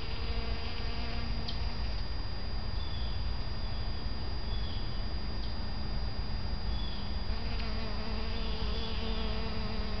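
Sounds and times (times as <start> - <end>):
steady low rumble: 0.0 - 8.2
bee buzzing: 0.0 - 10.0.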